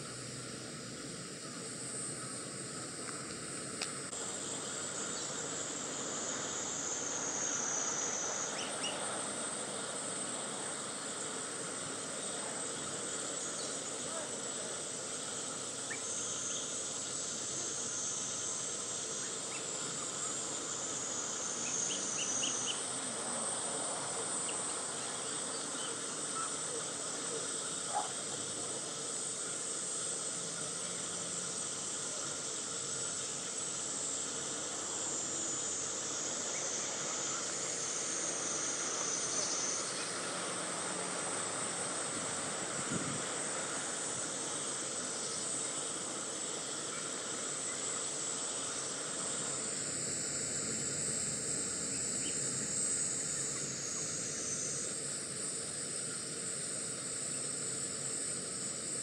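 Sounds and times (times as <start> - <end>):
insects buzzing: 0.0 - 59.0
outdoor background hiss: 0.0 - 59.0.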